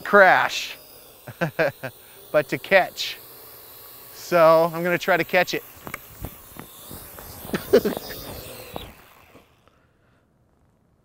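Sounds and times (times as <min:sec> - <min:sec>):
quadcopter rotors running: 0:00.0 - 0:10.8.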